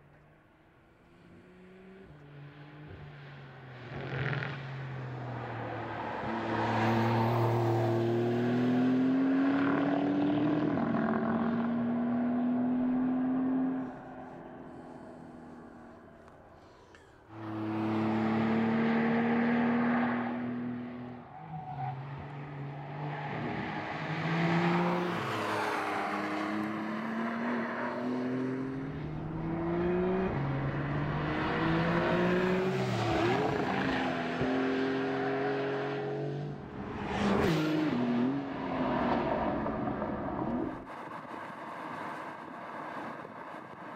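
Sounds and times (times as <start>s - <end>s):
car engine revving through gears: 17.5s - 20.9s, 23.2s - 40.8s.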